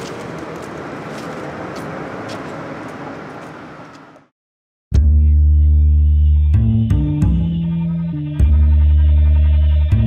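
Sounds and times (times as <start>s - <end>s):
passing vehicles rumble: 0.0s - 4.3s.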